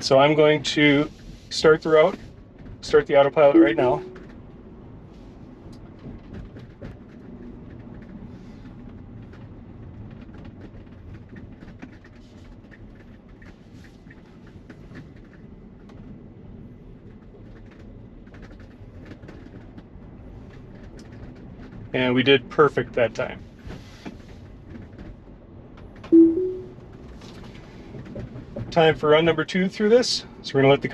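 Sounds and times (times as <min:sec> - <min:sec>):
tyre and road noise in car: 0:00.0 - 0:03.5, 0:04.2 - 0:26.1, 0:26.8 - 0:30.9.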